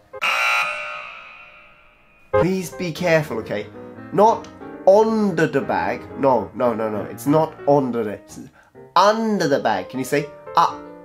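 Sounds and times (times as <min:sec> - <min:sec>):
harsh buzzer tone: 0:00.2 - 0:02.4.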